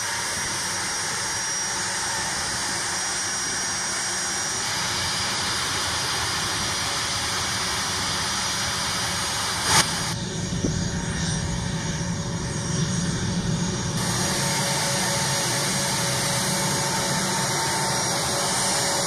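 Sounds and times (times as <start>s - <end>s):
jet engines running: 0.0s - 19.0s
loud jet engine burst: 13.8s - 19.0s.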